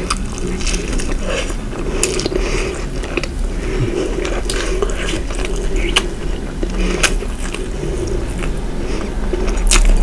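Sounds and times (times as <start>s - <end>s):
chewing pastry: 0.0s - 10.0s.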